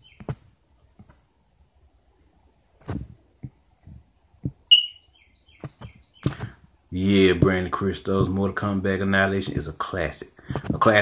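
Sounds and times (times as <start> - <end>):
high-pitched electronic beep: 4.7 - 5.1.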